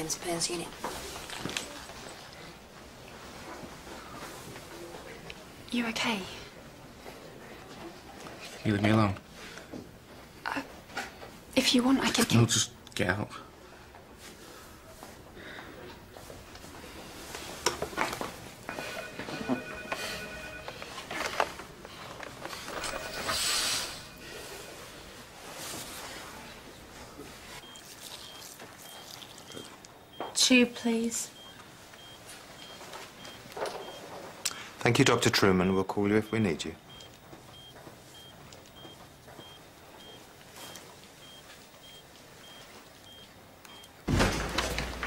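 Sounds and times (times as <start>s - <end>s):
patient monitor beeps: 18.7s - 25.3s, 27.6s - 34.2s, 36.1s - 44.0s.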